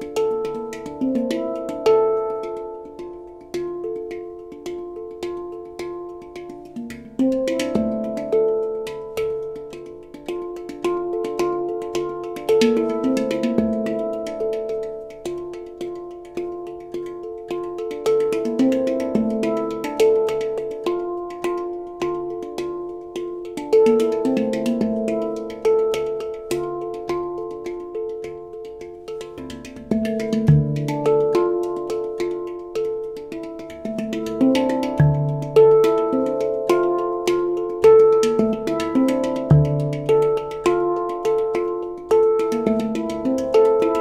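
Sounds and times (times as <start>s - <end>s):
handpan notes ringing: 0.0s - 44.0s.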